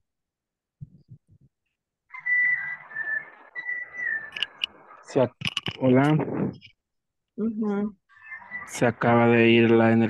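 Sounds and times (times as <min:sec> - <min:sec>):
high whistle-like tone: 0:02.1 - 0:04.7.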